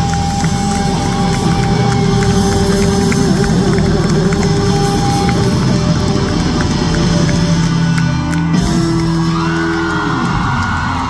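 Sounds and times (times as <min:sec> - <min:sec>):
crowd whooping and shouting: 0:00.0 - 0:11.0
live rock band with electric guitar: 0:00.0 - 0:11.0.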